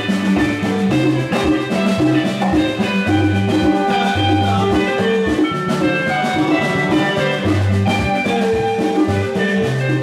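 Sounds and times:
bass figure: 0.0s - 10.0s
conga drums: 0.0s - 10.0s
electric guitar lines: 0.0s - 10.0s.

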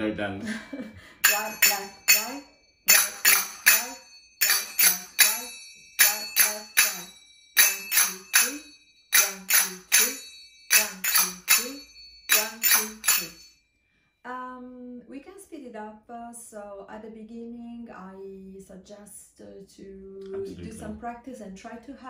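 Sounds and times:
finger cymbals ringing: 1.2s - 13.7s.

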